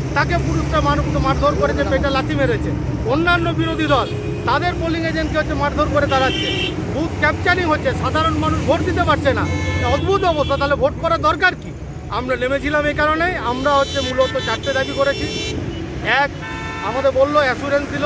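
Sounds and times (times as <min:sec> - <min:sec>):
man speaking: 0:00.0 - 0:18.0
road traffic rumble: 0:00.0 - 0:18.0
car horn toots: 0:06.0 - 0:06.8, 0:08.9 - 0:10.8, 0:13.5 - 0:15.8, 0:16.4 - 0:17.1.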